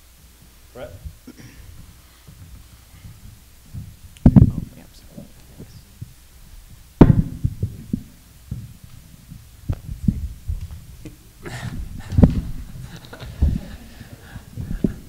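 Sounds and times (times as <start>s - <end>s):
microphone handling thumps: 0.0s - 15.0s
small knocks and rustles: 0.3s - 15.0s.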